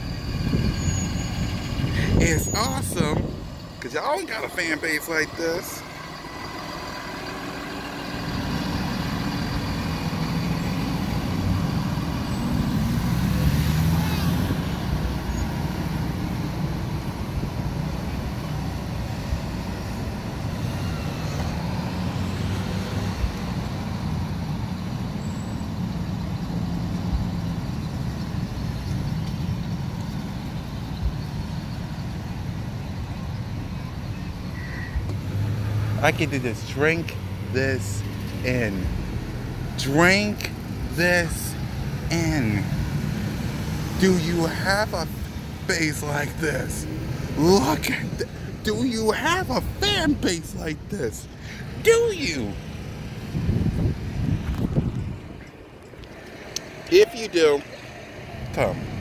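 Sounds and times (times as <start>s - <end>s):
low engine rumble: 0.0s - 13.5s.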